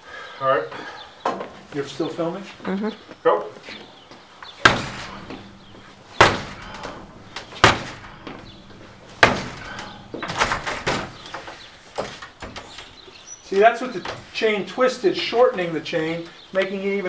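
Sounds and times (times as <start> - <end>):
door being kicked: 4.6 - 13.1.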